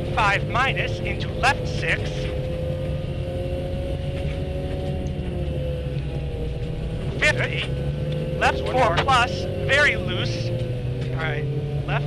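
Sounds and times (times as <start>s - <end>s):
car engine running: 0.0s - 12.0s
tyre and road noise: 0.0s - 12.0s.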